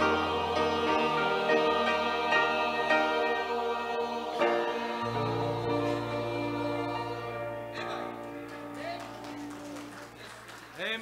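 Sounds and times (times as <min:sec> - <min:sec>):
church choir singing: 0:00.0 - 0:10.2.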